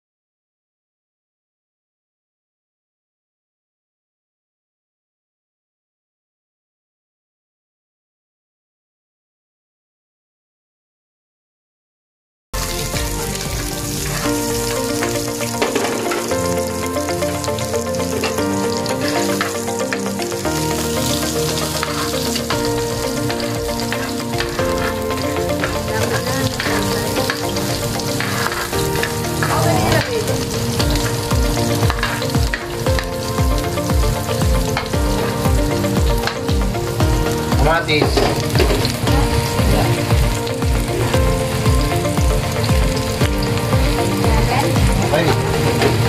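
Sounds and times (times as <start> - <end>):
background music: 12.6 - 46.0
food sizzling in oil: 12.6 - 46.0.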